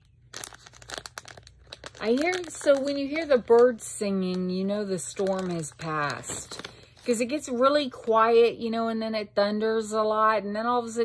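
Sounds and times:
plastic bag crinkling: 0.0s - 7.6s.

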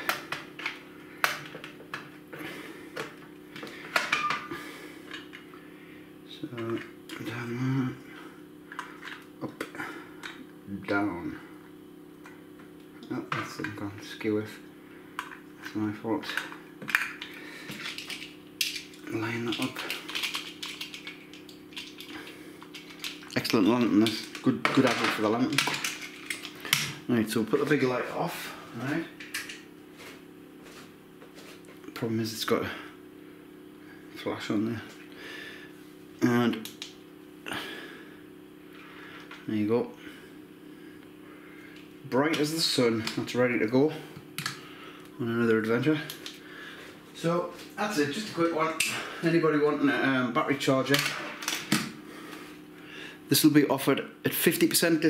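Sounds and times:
faint steady hum: 0.0s - 55.0s
batteries clicking into lantern: 16.8s - 26.9s.

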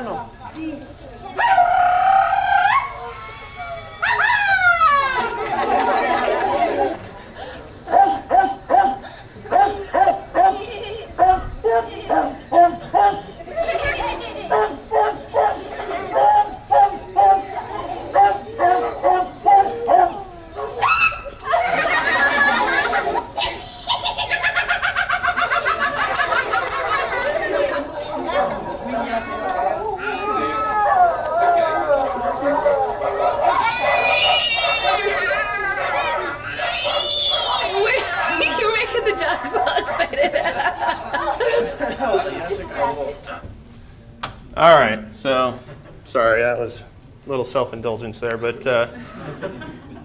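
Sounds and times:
man howling like a dog: 1.4s - 5.3s, 18.2s - 21.3s, 29.9s - 38.1s
man barking like a dog: 7.9s - 10.6s, 11.2s - 13.2s, 14.5s - 17.4s, 18.1s - 20.8s, 32.0s - 37.8s.

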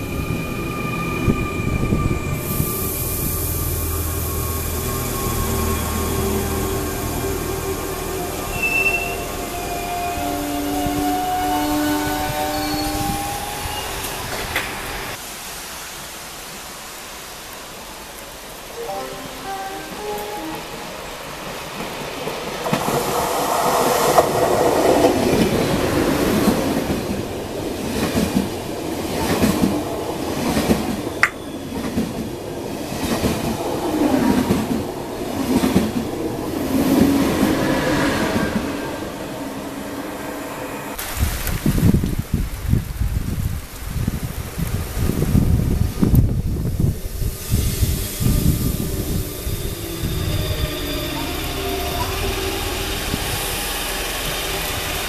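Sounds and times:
high-speed train rumbling past: 0.0s - 17.2s, 18.0s - 55.0s.

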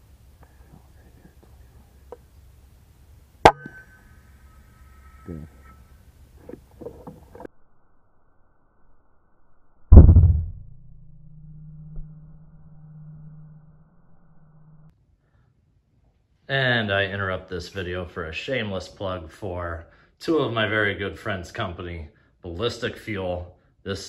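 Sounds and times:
low steady hum: 0.0s - 15.4s.

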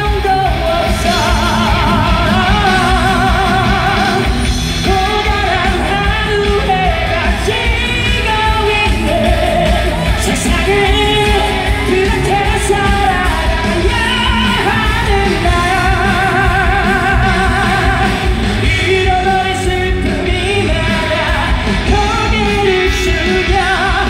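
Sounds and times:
amplified backing track: 0.0s - 24.0s
man singing pop song: 0.0s - 24.0s.

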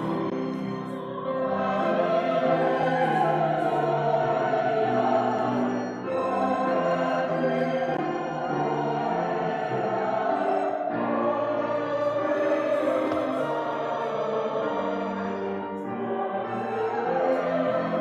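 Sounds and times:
congregation and choir singing hymn: 0.0s - 18.0s.

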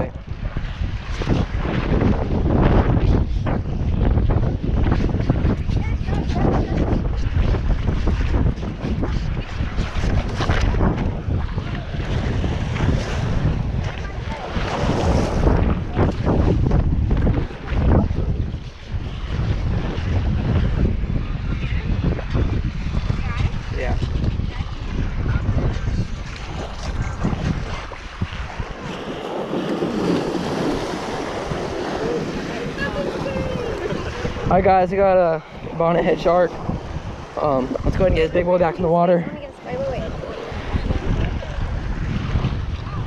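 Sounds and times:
small surf breaking on beach: 0.0s - 21.0s, 21.6s - 43.0s
wind buffeting microphone: 0.0s - 43.0s.

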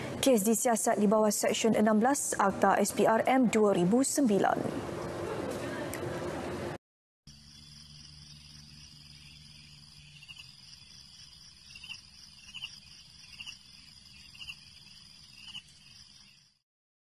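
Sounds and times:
high-pitched insect trill: 7.3s - 16.6s.

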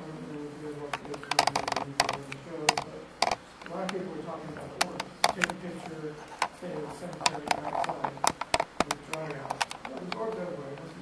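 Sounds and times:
keyboard typing clicks: 1.0s - 4.0s.

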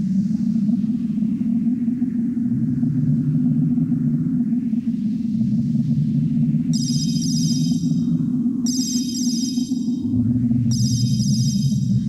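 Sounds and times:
low electronic drone: 6.6s - 12.0s.

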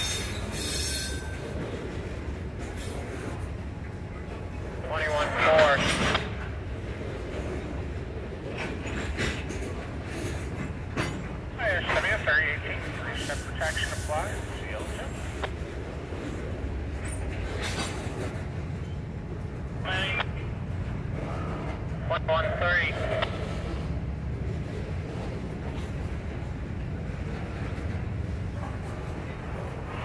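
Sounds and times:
clicks and knocks of rail cars: 0.0s - 30.0s
train wheels rumbling on rails: 0.0s - 30.0s.

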